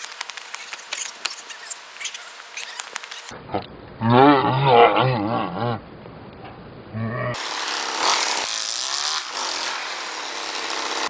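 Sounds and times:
man roaring: 0:04.0 - 0:05.8.

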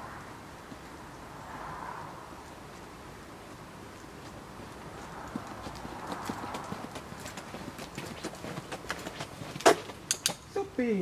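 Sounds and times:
footsteps on asphalt: 0:02.3 - 0:10.1
dog trotting on asphalt: 0:02.4 - 0:10.5.

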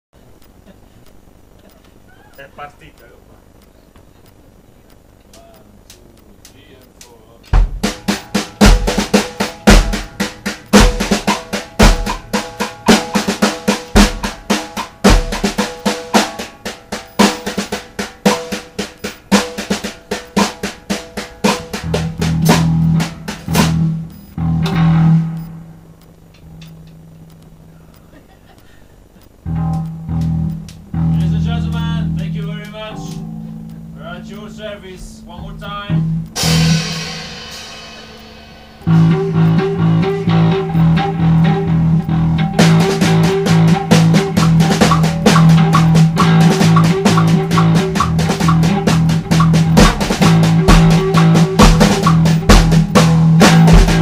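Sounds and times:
faint clicks: 0:00.2 - 0:16.2, 0:16.9 - 0:24.4, 0:25.4 - 0:36.5
low background rumble and hiss: 0:00.2 - 0:54.0
plucked bass guitar note: 0:21.7 - 0:25.5, 0:29.4 - 0:54.0.

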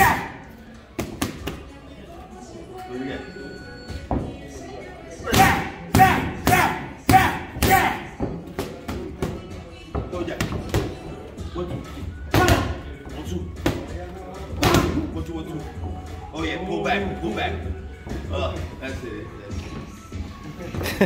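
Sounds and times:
boxing gloves hitting mitts: 0:05.3 - 0:11.0, 0:12.3 - 0:12.8.

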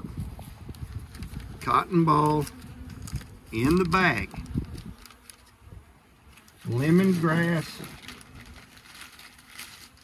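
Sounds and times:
plastic bag rustling and crinkling: 0:00.0 - 0:05.6, 0:06.2 - 0:10.0.

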